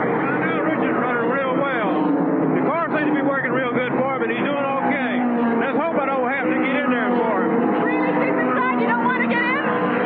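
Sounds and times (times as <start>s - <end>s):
man talking: 0.0s - 7.5s
stock car engines droning: 0.0s - 10.0s.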